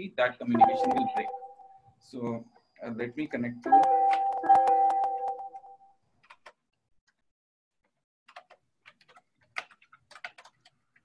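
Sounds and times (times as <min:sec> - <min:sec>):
soft keyboard clicks: 0:06.2 - 0:07.2, 0:08.3 - 0:11.0.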